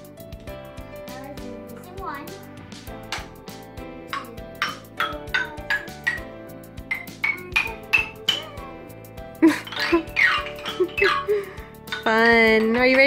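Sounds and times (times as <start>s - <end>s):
wooden xylophone notes: 2.9s - 13.0s.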